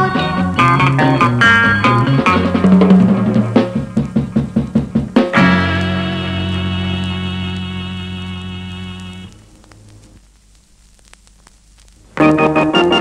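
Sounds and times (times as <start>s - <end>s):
pop band instrumental: 0.0s - 8.1s
band accented hits: 0.1s - 9.3s.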